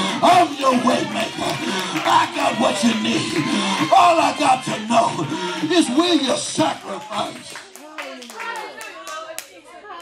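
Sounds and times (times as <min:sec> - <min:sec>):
people calling out: 0:00.0 - 0:07.5.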